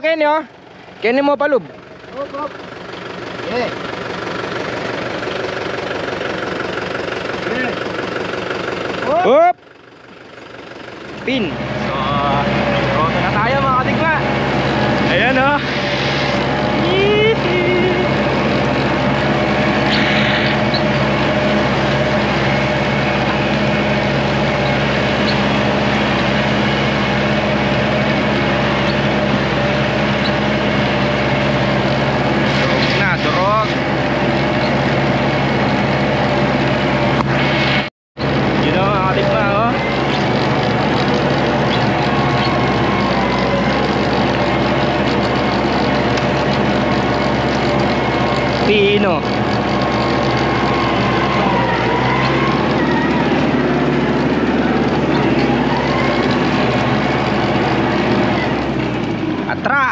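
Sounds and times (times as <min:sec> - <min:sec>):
tractor engine under load: 0:00.0 - 0:59.9
rotary tiller churning soil: 0:01.7 - 0:09.4, 0:10.0 - 0:59.9.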